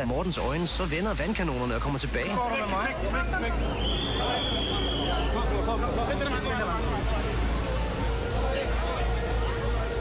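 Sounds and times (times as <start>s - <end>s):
crowd voices: 2.4s - 10.0s.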